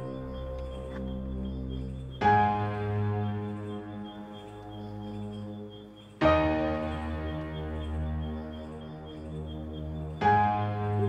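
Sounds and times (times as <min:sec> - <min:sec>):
slow music of sustained chords: 0:00.0 - 0:11.0.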